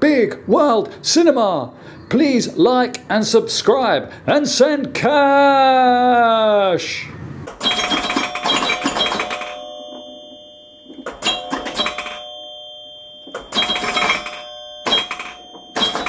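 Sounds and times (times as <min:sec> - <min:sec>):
rattling chime with ringing tone: 0:07.5 - 0:16.0.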